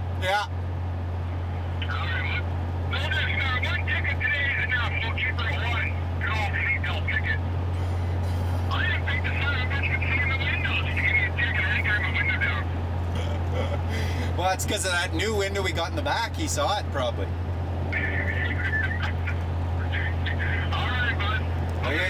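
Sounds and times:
vehicle road and engine drone: 0.0s - 22.0s.

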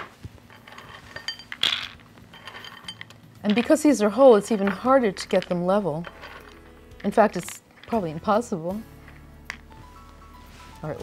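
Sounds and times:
almonds clinking and rattling: 0.5s - 9.2s.

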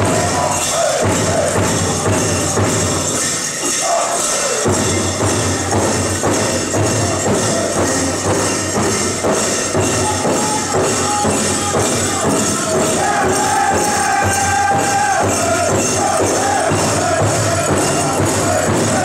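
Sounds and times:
big drum beating: 0.0s - 3.6s, 4.6s - 19.0s
people singing: 0.0s - 8.1s, 9.8s - 19.0s
jingling bells: 0.0s - 19.0s.

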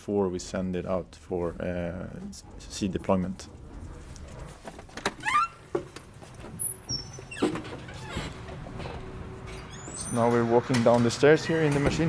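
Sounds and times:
door hinge squeak: 5.0s - 10.4s.

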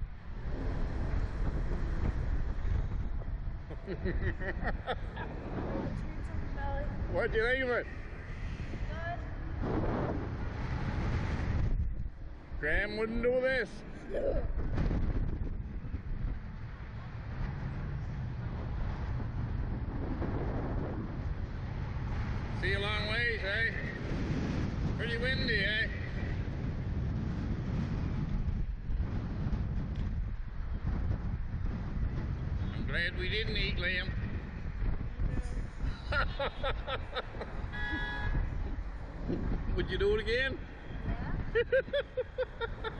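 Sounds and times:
wind buffeting microphone: 0.0s - 42.9s
person laughing: 3.7s - 5.4s, 35.8s - 37.7s, 41.5s - 42.9s
horn toot: 37.6s - 38.5s.

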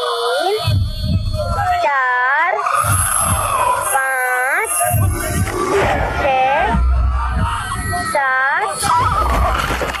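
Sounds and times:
high wailing cries: 0.0s - 10.0s
low rumbling pulses: 0.0s - 10.0s
people screaming: 0.0s - 10.0s.

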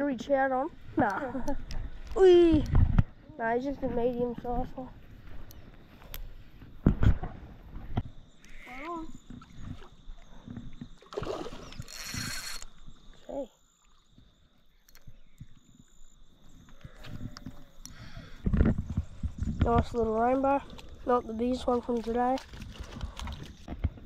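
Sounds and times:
fish splashing in water: 11.0s - 12.6s.

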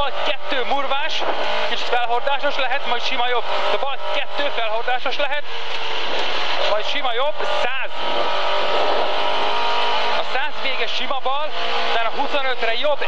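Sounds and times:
car engine running hard: 0.0s - 13.0s.

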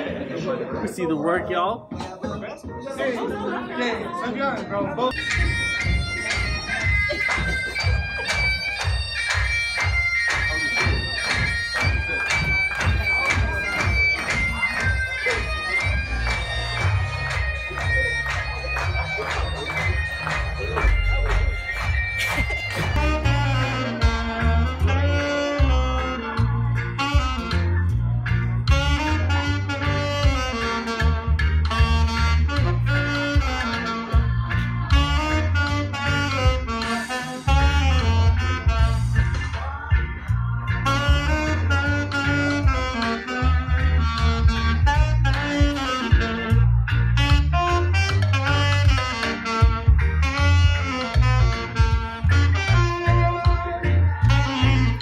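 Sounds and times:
bagpipe music: 5.1s - 26.0s
alto saxophone playing: 5.1s - 39.6s, 40.7s - 55.0s
deep pulsing bass line: 10.8s - 36.8s, 37.5s - 55.0s.

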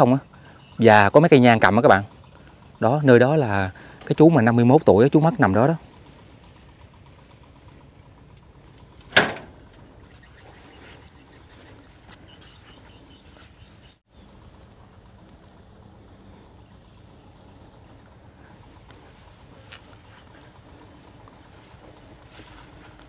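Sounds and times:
faint high whine: 0.0s - 23.0s.

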